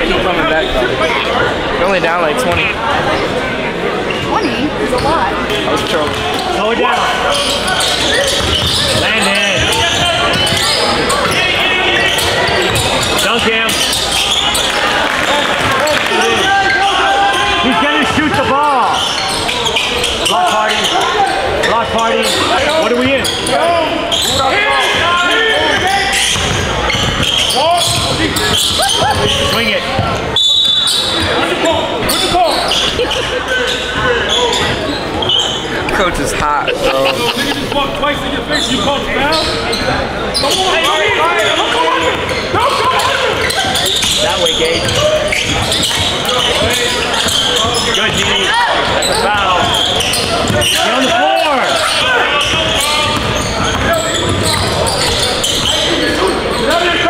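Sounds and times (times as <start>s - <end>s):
echoing voices in a gym: 0.0s - 57.0s.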